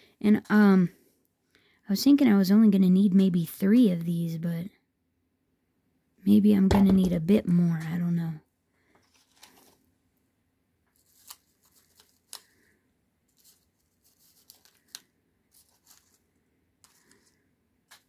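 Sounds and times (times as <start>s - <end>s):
paper crinkling and rustling: 9.0s - 9.9s, 10.9s - 18.0s.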